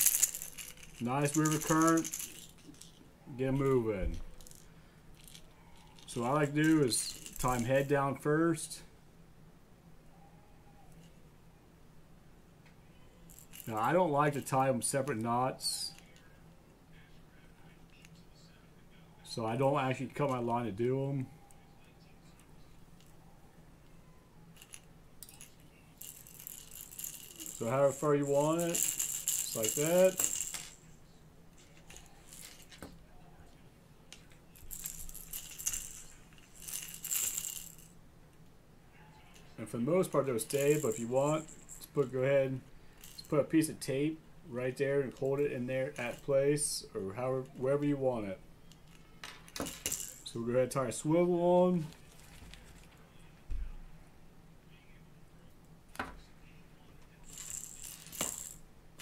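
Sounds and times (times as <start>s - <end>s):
fishing rattle rattling: 0.0s - 3.0s, 3.6s - 8.0s, 13.2s - 15.2s, 24.5s - 30.8s, 31.6s - 32.9s, 34.5s - 38.0s, 39.4s - 43.6s, 45.0s - 46.4s, 48.6s - 50.4s, 57.2s - 59.0s
faint handling noise: 12.6s - 53.9s, 54.7s - 59.0s.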